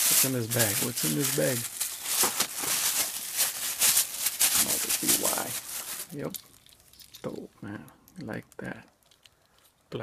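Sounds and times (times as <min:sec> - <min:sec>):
plastic bag crinkling: 0:00.0 - 0:07.4.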